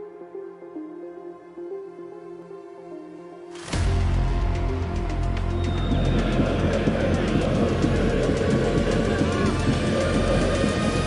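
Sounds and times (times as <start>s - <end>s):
music: 0.0s - 11.0s
crowd chanting: 5.6s - 11.0s.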